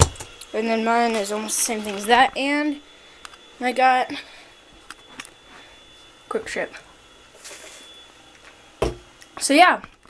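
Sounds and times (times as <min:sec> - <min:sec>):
plastic cup thump on counter: 0:08.8 - 0:09.0.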